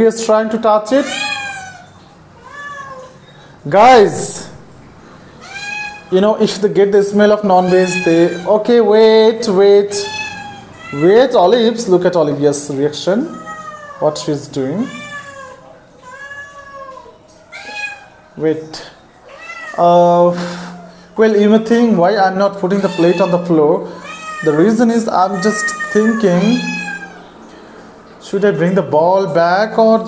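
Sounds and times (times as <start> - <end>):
cat meowing: 0.9 - 3.3, 5.4 - 6.2, 7.4 - 8.7, 9.8 - 11.4, 13.2 - 18.3, 19.2 - 21.0, 22.5 - 27.4.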